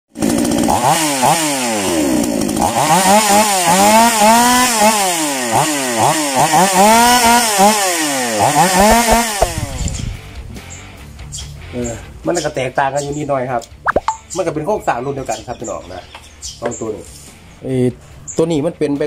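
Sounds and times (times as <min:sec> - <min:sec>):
chainsaw engine revving: 0:00.1 - 0:10.0.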